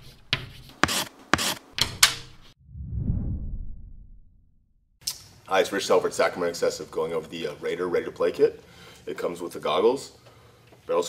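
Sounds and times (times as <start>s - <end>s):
chalk scratching on blackboard: 0.0s - 2.5s.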